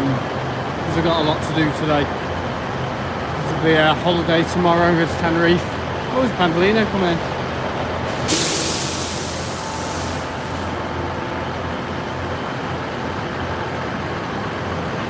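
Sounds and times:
train low hum: 0.0 - 15.0
air brake hiss: 8.1 - 10.8.

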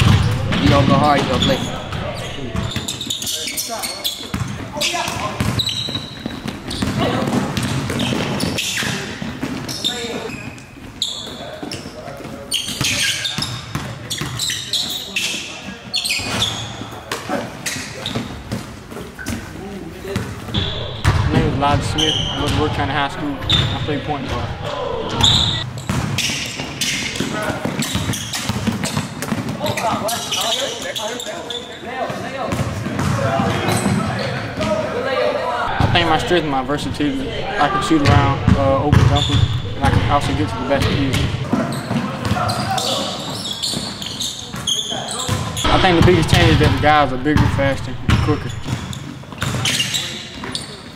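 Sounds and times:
voices echoing: 0.0 - 25.7, 26.7 - 50.9
basketball bouncing on hardwood: 20.6 - 21.3, 47.4 - 49.6
basketball bouncing on wooden floor: 20.6 - 21.3, 38.1 - 42.5, 45.3 - 49.6
background voices: 20.6 - 25.6.

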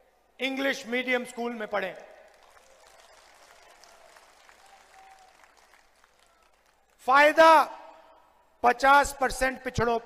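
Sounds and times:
distant crowd applause: 2.2 - 7.0.

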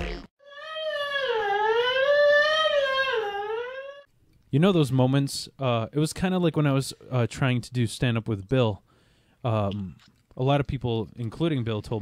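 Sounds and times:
long high wavering wail: 0.4 - 4.1.

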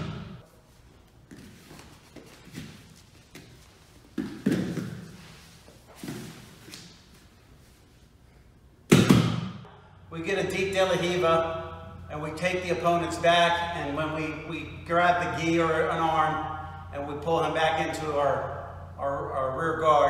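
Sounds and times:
bodies thudding on foam mats: 1.3 - 5.4.

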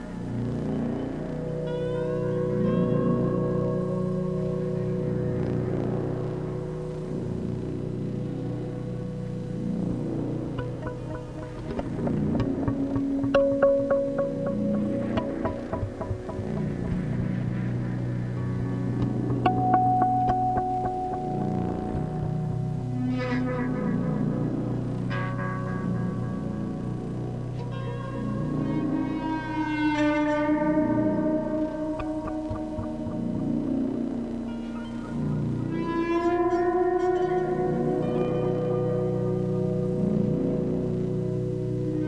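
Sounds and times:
low oscillator drone: 0.0 - 42.0
plucked guitar notes: 0.0 - 42.0
held higher tone: 8.5 - 25.0.

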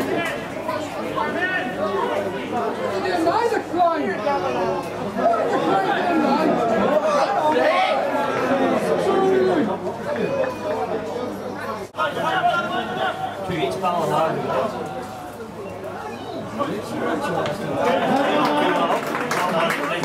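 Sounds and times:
indistinct chatter: 0.0 - 20.0.

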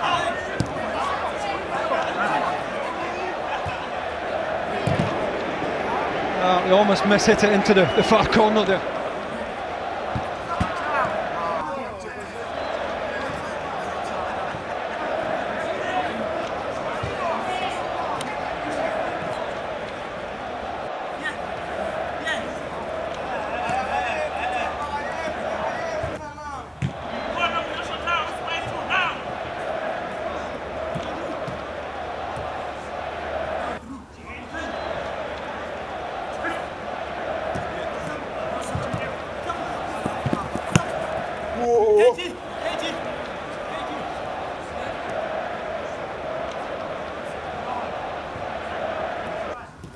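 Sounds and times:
players shouting: 0.0 - 49.8
ball being kicked: 4.8 - 5.2.

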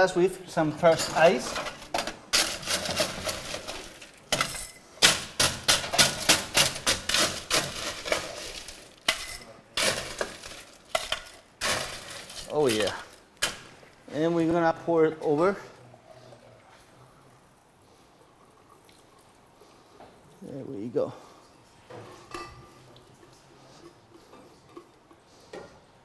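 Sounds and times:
ice crunching and clinking: 0.8 - 13.6.

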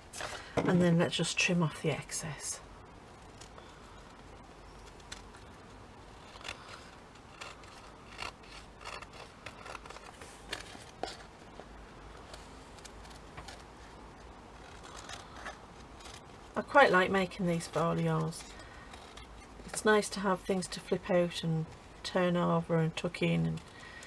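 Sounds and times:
scissors snipping paper: 6.3 - 11.3.

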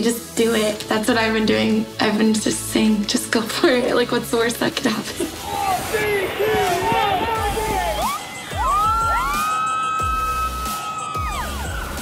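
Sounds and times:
background music with low beat: 4.7 - 12.0
long high-pitched human scream: 5.6 - 12.0.

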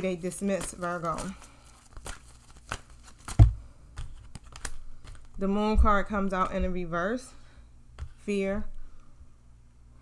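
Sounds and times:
cards being shuffled: 0.0 - 5.4.

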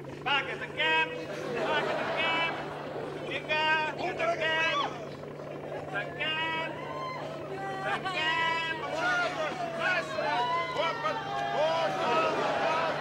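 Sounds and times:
steady low hum: 0.0 - 13.0
people shouting over one another: 6.4 - 13.0
loud high-pitched cries: 6.7 - 13.0.

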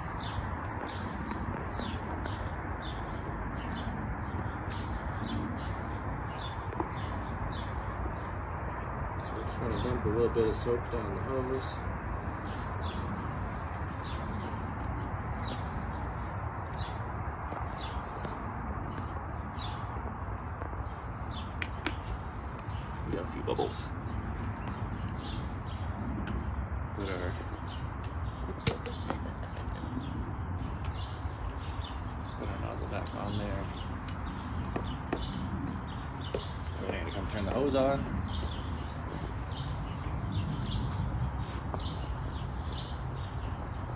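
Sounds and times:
small birds chirping: 0.0 - 43.9
steady low rumble: 0.0 - 43.9.

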